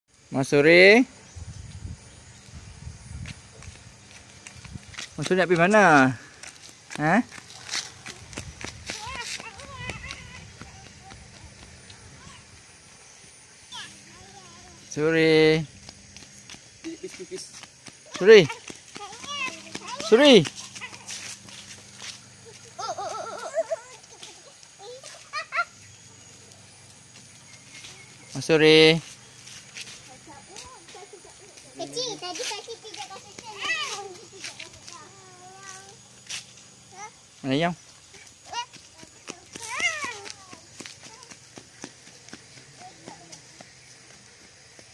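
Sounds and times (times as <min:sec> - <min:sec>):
footsteps on asphalt: 0:02.2 - 0:44.9
sandals slapping on pavement: 0:03.2 - 0:12.4, 0:13.7 - 0:37.3, 0:37.9 - 0:44.9
child's high-pitched calls: 0:08.9 - 0:11.3, 0:12.1 - 0:12.5, 0:13.7 - 0:14.9, 0:18.5 - 0:21.2, 0:31.8 - 0:36.0, 0:38.4 - 0:41.3.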